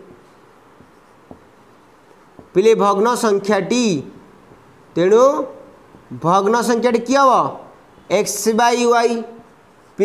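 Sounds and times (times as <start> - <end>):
marker writing on whiteboard: 0.7 - 3.4, 9.4 - 10.0
marker tip tapping: 0.8 - 2.6.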